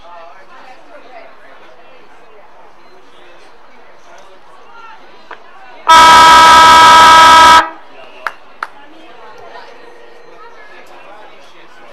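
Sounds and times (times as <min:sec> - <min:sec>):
siren horn blast: 0:05.9 - 0:07.8.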